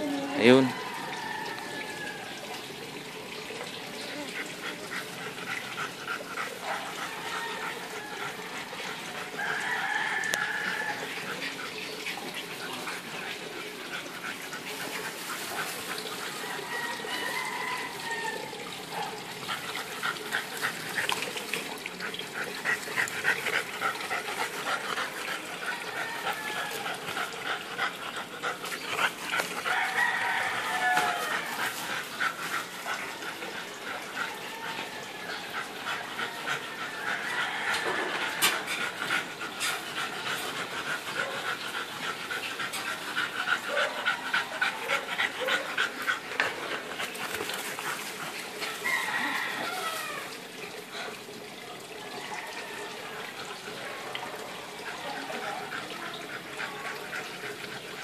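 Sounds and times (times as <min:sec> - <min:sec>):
dogs playing: 0:00.0 - 0:58.0
dog panting heavily: 0:04.1 - 0:16.7, 0:18.8 - 0:48.9, 0:53.2 - 0:58.0.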